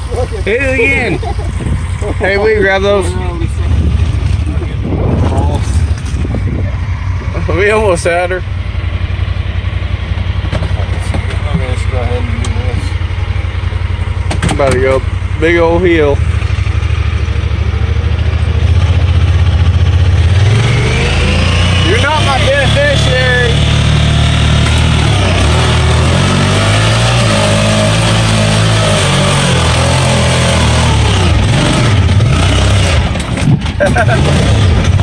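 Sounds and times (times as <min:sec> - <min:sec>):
vehicle engine under hard load: 0:00.0 - 0:35.0.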